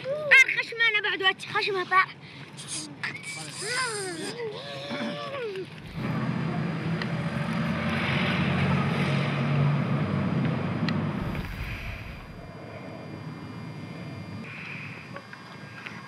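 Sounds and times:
engine droning: 5.7s - 16.0s.

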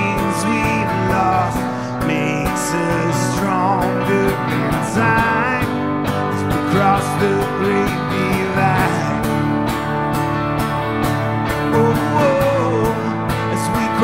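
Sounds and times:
acoustic guitar strumming: 0.0s - 14.0s
electric guitar lead lines: 0.0s - 14.0s.

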